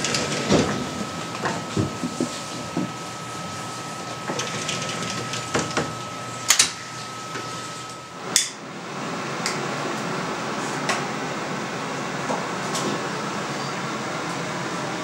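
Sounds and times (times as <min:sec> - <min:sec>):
thin steady whine: 0:00.0 - 0:15.0.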